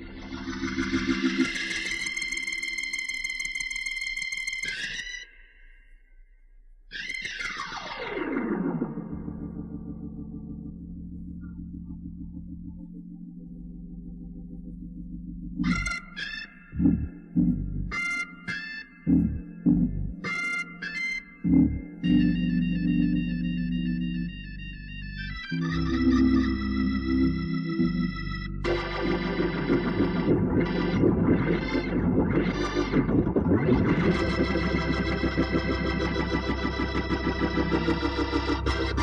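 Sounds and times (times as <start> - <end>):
electric organ playing hymn: 8.2 - 39.0.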